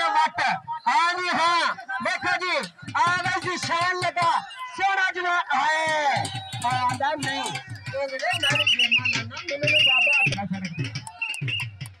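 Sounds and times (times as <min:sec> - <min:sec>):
man's voice: 0:00.0 - 0:11.1
trilling whistle blasts: 0:06.2 - 0:11.8.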